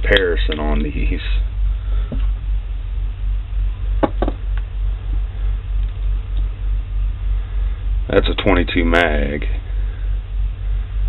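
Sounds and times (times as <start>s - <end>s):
pulsing mechanical hum: 0.0s - 11.0s.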